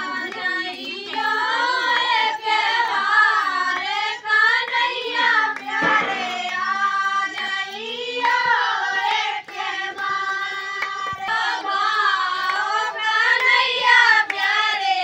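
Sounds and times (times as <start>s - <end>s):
hand claps: 0.0s - 15.0s
women and girls singing: 0.0s - 15.0s.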